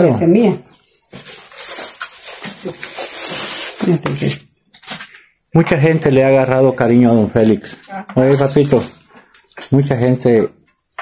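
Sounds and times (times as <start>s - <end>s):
plastic bags crinkling: 1.1s - 5.2s.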